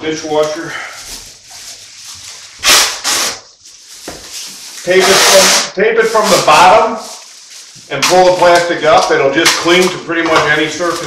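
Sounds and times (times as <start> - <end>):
tape ripping off roll: 2.4 - 11.0.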